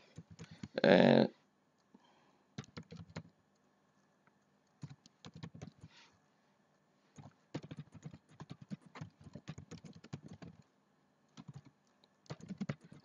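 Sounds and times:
typing on a computer keyboard: 2.6 - 3.4, 4.7 - 5.9, 7.2 - 10.7, 11.3 - 13.0.

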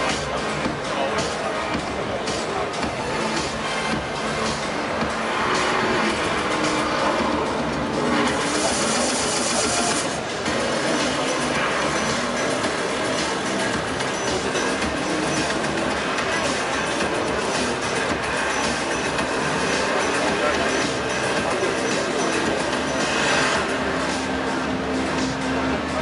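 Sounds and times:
car engine sound effects: 0.0 - 26.0
music over loudspeakers: 0.0 - 26.0.

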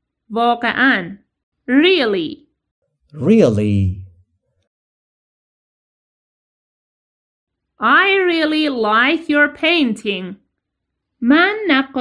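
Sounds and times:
spoken word: 3.1 - 4.2.

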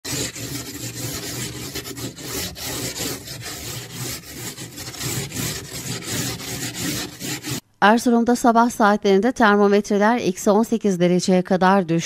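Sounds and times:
ice scraper rasping on glass: 0.0 - 7.6.

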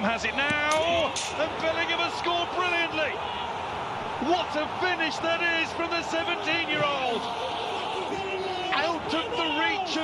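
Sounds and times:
man commentating: 0.0 - 3.2, 4.1 - 10.0
broadcast background noise: 0.0 - 10.0.

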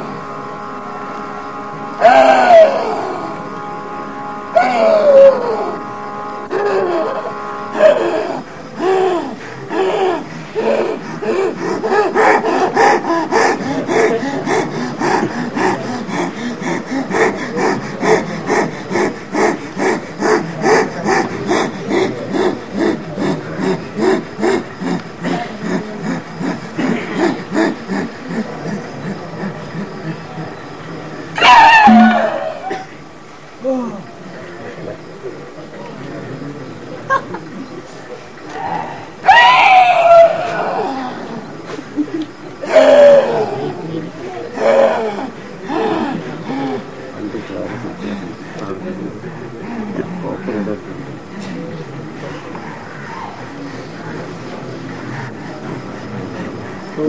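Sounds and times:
cymbals: 31.9 - 32.8.

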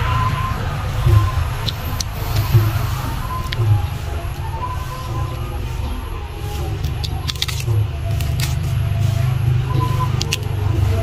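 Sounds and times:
low rumble: 0.0 - 11.0.

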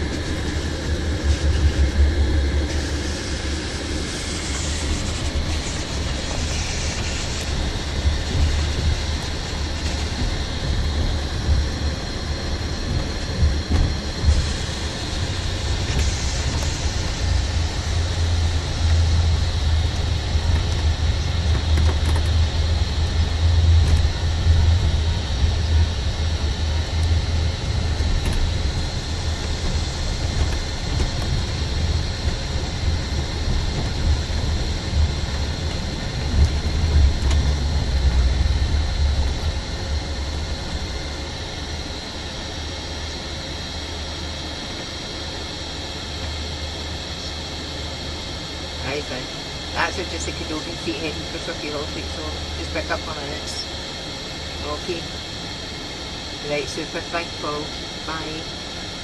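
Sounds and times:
bus engine and road rumble: 0.0 - 59.0.

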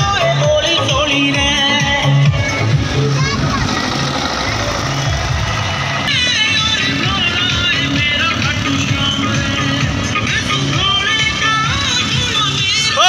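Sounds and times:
loud music with bass beat: 0.0 - 13.0.

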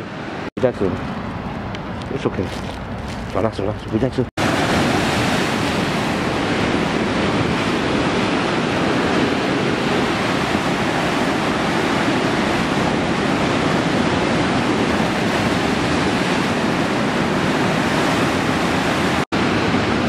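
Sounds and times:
surf breaking on rocks: 4.4 - 20.0.

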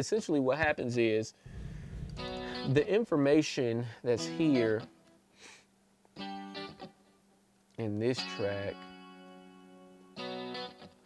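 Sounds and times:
funk guitar chord: 1.5 - 2.8.

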